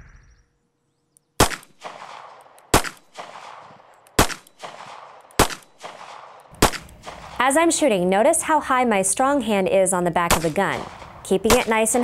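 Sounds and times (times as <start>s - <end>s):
revolver gunshots with echo: 1.4s - 7.5s, 10.3s - 12.0s.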